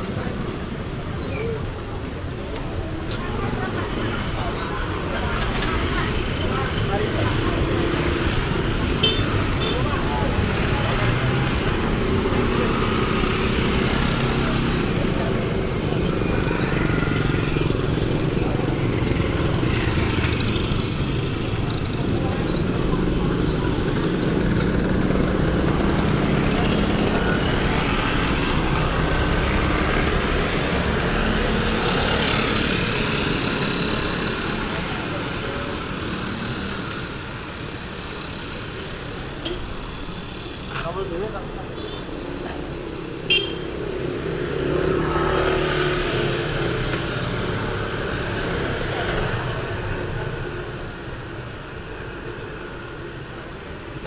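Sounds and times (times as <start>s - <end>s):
people's voices: 0.0s - 31.1s
motorcycles passing: 2.0s - 54.0s.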